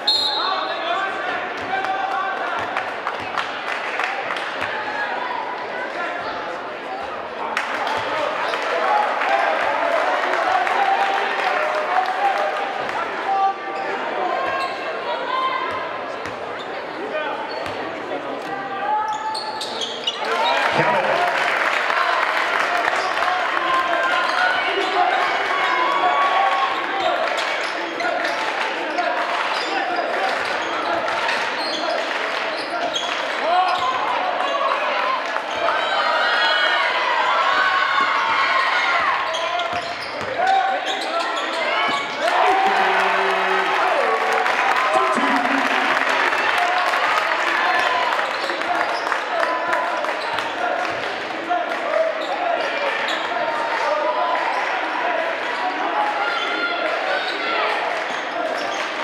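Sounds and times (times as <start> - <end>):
crowd talking and calling out: 0.0 - 59.0.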